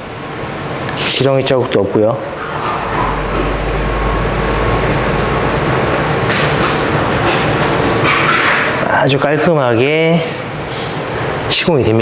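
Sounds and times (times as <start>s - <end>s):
machine hum and hiss: 0.0s - 12.0s
low machine rumble: 1.5s - 9.3s.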